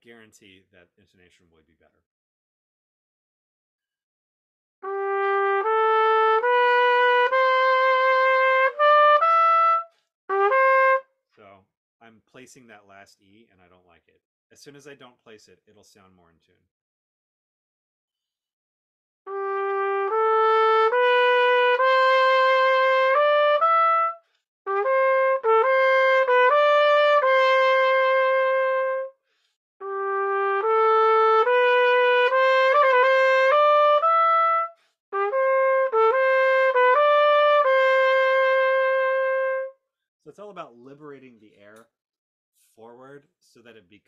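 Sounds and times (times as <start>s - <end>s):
solo trumpet melody: 4.8s - 11.1s, 19.3s - 29.2s, 29.8s - 39.8s.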